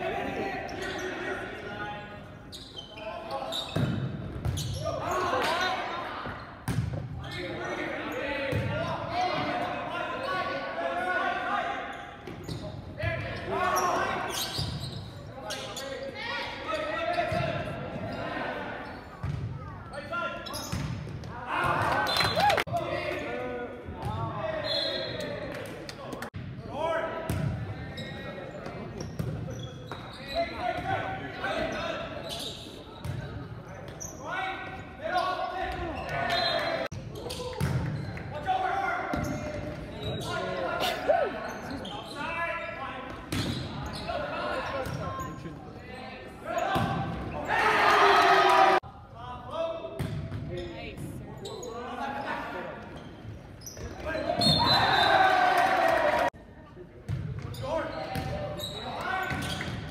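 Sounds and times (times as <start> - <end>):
people shouting and cheering: 21.3 - 23.1, 54.4 - 56.3.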